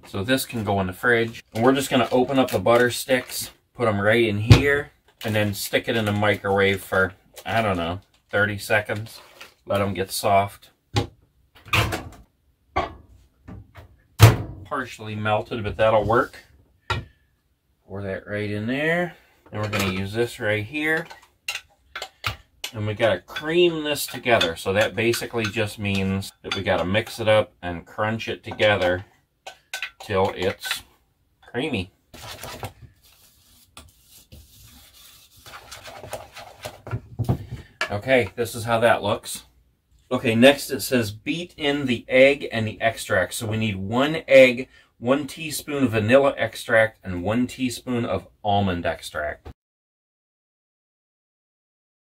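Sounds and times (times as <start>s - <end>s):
utensil scraping mixing bowl: 19.6s - 27.4s, 32.1s - 36.9s.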